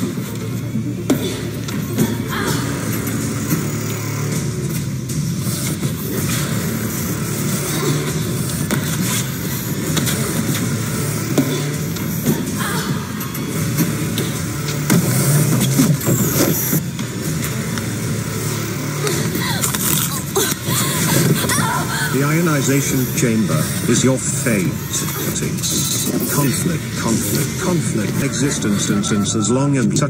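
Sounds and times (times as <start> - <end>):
forklift engine running: 0.0 - 29.6
background music: 0.0 - 30.0.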